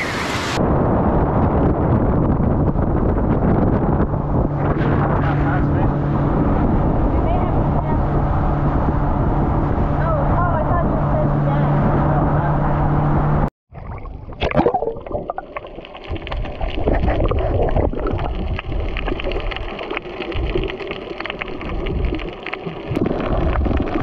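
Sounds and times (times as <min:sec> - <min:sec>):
wind on microphone: 0:00.0 - 0:13.5, 0:16.1 - 0:20.7
low boat engine hum: 0:02.6 - 0:13.5.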